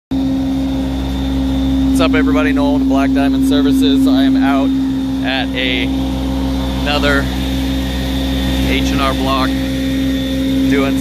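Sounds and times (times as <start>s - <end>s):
carpet cleaning machine drone: 0.1s - 11.0s.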